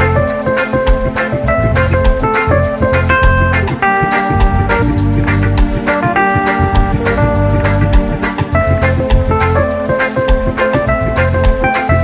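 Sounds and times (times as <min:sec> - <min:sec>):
live reggae band: 0:00.0 - 0:12.0
drum beat: 0:01.8 - 0:09.3.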